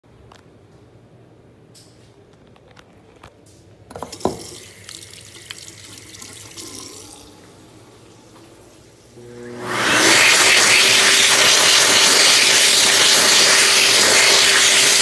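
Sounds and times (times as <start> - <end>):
faint steady hum: 0.1 - 9.7
faucet water running into sink: 4.1 - 7.5, 10.0 - 15.0.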